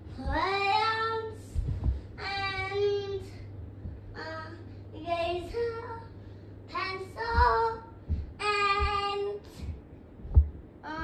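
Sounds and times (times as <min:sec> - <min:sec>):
young child singing: 0:00.0 - 0:03.5, 0:04.1 - 0:09.8
faint low thumps: 0:00.0 - 0:11.0.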